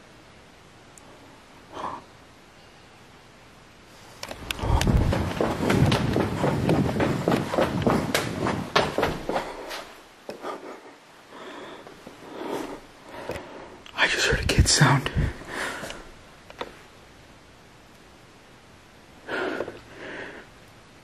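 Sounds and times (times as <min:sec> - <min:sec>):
heavy footsteps on hard floor: 0:04.3 - 0:10.0.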